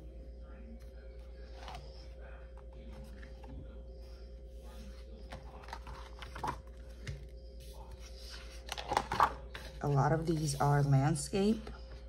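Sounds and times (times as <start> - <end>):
steady low hum: 0.0 - 12.0
paper page rustling: 4.7 - 10.9.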